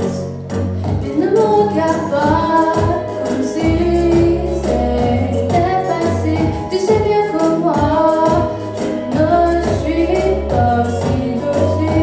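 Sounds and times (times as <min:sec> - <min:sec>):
backing track with bass and beat: 0:00.0 - 0:12.0
woman singing into microphone: 0:00.0 - 0:12.0.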